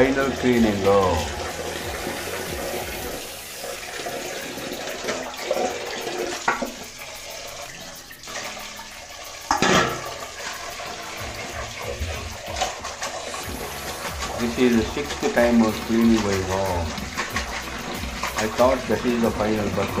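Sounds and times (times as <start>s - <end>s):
water splashing and pouring: 0.0s - 20.0s.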